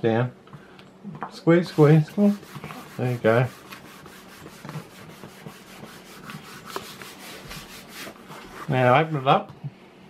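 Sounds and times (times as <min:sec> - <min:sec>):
hands rubbing paper: 0:01.6 - 0:09.4.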